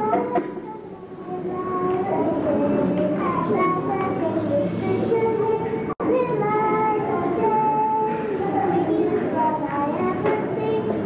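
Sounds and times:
girl singing: 0.0s - 11.0s.

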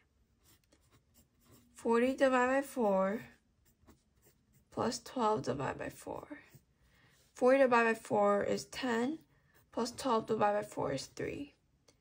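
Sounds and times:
pencil scratching on paper: 0.0s - 11.5s
person speaking: 0.4s - 11.6s.

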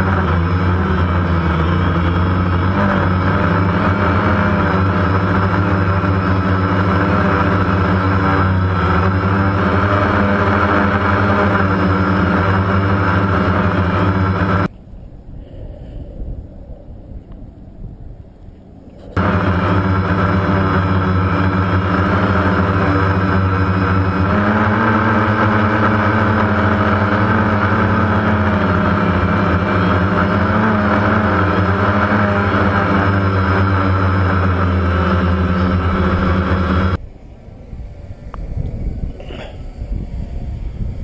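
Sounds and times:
drone motors and propellers: 0.0s - 41.0s.

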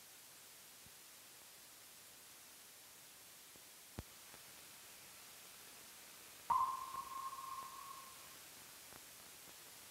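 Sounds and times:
faint steady hiss: 0.0s - 9.9s
bell-like ping: 6.5s - 8.3s.

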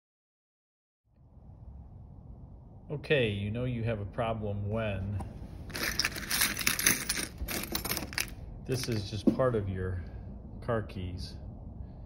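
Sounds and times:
metal keys jingling and clattering: 5.7s - 9.2s.

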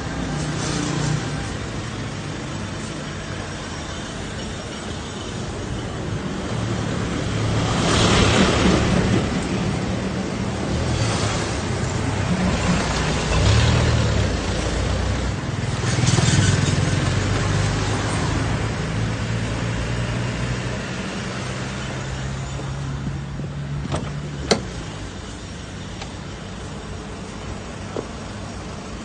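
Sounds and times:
wind and road noise: 0.0s - 29.0s.

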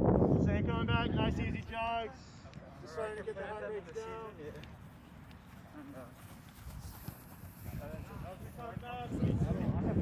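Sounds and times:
footsteps jogging on turf: 4.9s - 8.6s.

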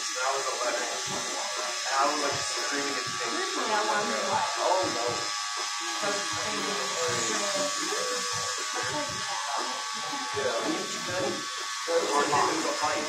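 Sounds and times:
electric hair clippers humming: 0.0s - 13.0s.

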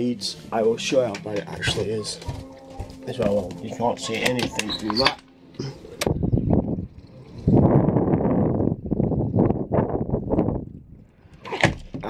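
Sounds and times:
wind gusting on microphone: 5.8s - 11.4s.

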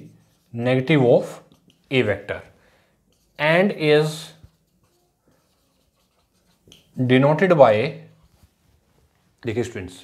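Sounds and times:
marker writing on whiteboard: 0.0s - 2.2s, 3.1s - 7.2s.

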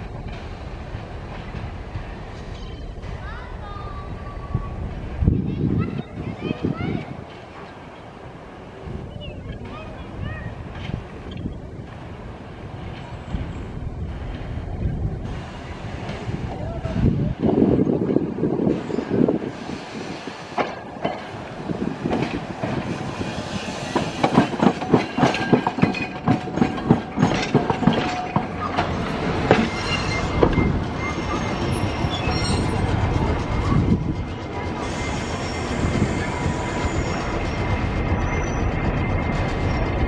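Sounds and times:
streetcar wheels clattering over rails: 0.0s - 40.0s
high wheel squeal: 28.2s - 40.0s.

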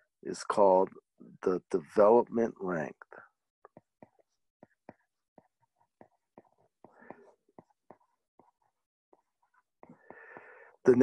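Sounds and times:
stylus tapping on glass screen: 3.6s - 10.7s.

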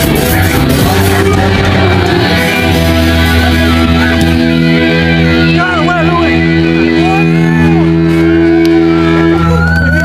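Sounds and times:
live band held chord: 0.0s - 9.5s
amp hum: 0.0s - 9.9s
crowd voices: 0.0s - 10.0s.

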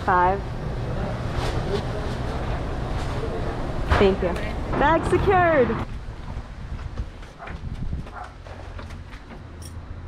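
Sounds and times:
wind rumbling on microphone: 4.6s - 8.3s.

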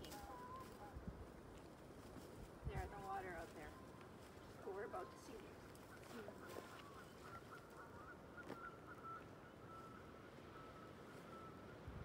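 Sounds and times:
distant geese honking: 2.8s - 12.0s.

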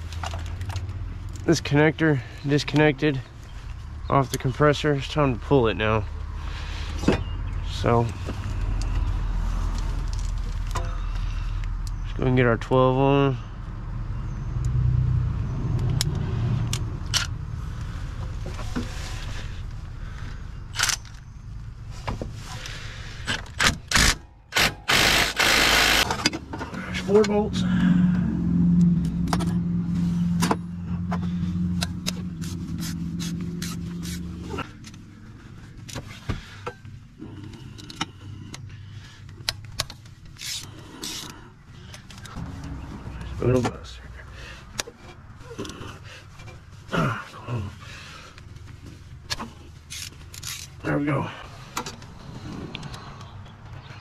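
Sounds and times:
steady low hum: 24.8s - 50.4s.

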